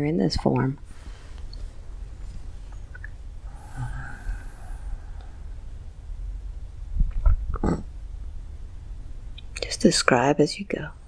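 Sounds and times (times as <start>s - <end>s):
low room rumble: 0.0s - 11.0s
person nasal throat sound: 3.5s - 4.7s, 7.5s - 7.9s.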